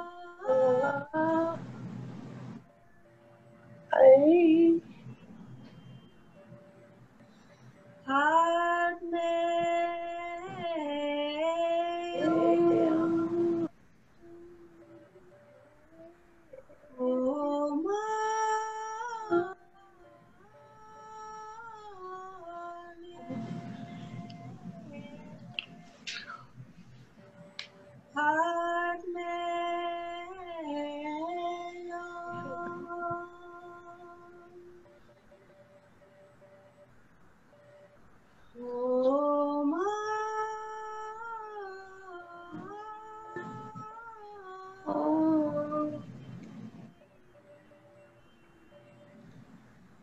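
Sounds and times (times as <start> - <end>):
woman singing held oh: 0.0 - 1.7, 3.9 - 4.8, 8.1 - 26.0, 28.2 - 35.0, 38.6 - 46.1
breath: 7.2 - 8.0
woman chanting a held vowel: 12.0 - 14.6.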